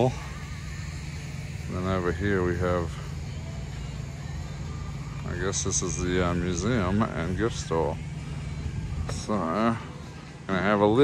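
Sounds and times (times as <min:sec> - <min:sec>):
low outdoor background rumble: 0:00.0 - 0:11.0.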